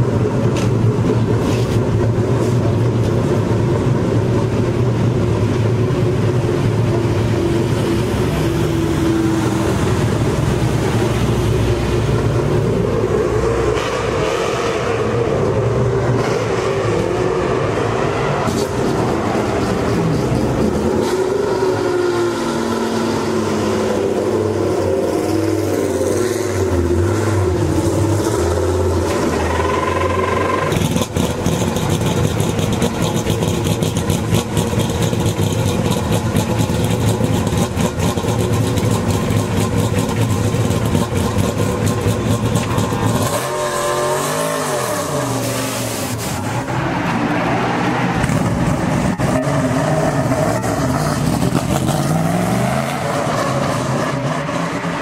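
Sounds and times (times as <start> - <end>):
race car engine idling: 29.3 - 43.2.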